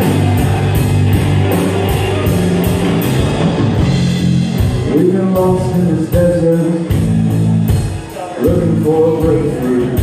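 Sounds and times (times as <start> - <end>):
drum kit: 0.0 - 10.0
electric guitars: 0.0 - 10.0
heavy bass line: 0.0 - 10.0.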